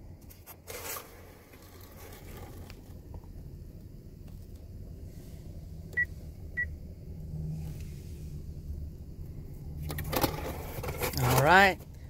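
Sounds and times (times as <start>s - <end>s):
car engine idling: 1.2s - 12.0s.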